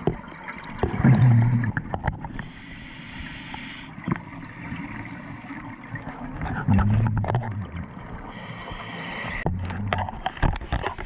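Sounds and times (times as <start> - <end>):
exhaled bubbles gurgling: 0.0 - 11.0
regulator inhale hiss: 2.4 - 4.0, 5.0 - 5.7, 8.0 - 9.5, 10.2 - 11.0.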